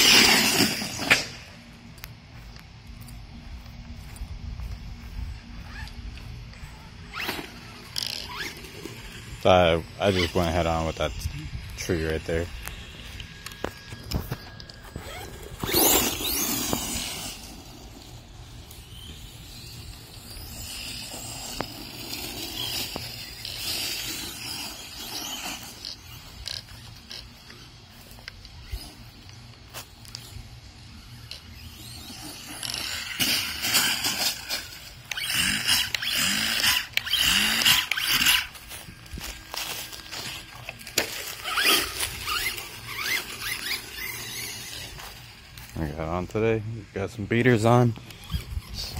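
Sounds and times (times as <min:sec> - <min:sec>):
toy truck electric motor whining: 0:00.0 - 0:01.4, 0:06.8 - 0:46.2, 0:47.6 - 0:48.9.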